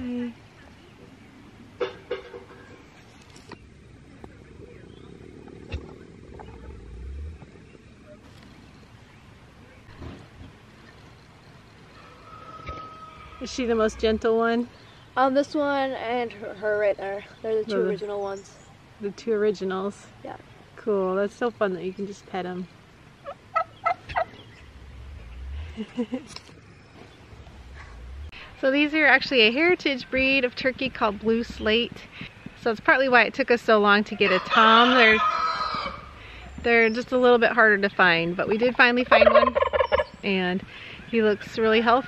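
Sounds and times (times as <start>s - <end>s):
turkey low drumming hum: 0.8s - 14.4s, 23.2s - 29.2s, 39.0s - 42.0s
turkey spitting: 3.5s - 7.7s
turkey calling: 11.8s - 14.2s, 23.2s - 25.7s, 34.2s - 36.2s, 39.0s - 40.2s.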